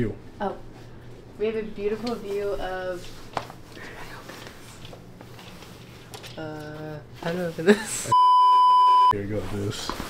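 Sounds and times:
low room hum: 0.0 - 10.0
curtain fabric rustling: 0.8 - 7.8.

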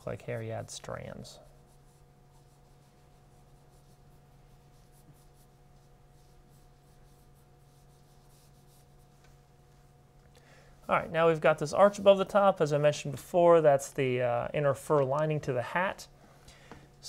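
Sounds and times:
pencil scratching on paper: 0.2 - 9.2.

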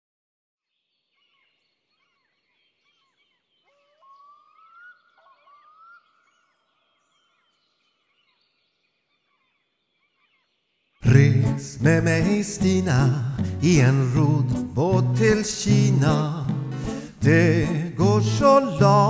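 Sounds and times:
birds chirping: 0.7 - 19.0.

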